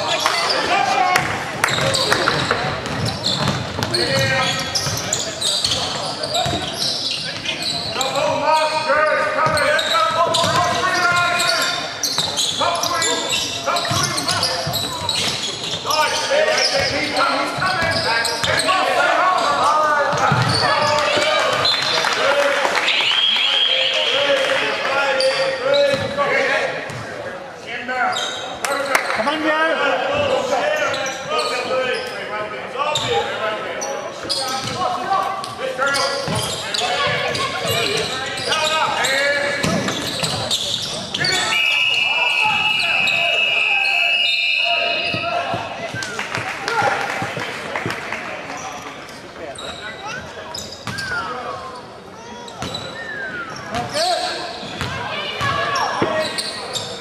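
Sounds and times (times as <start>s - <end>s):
sneakers squeaking: 0.0s - 22.0s, 24.8s - 27.3s, 28.1s - 29.5s, 30.1s - 32.3s, 32.9s - 57.0s.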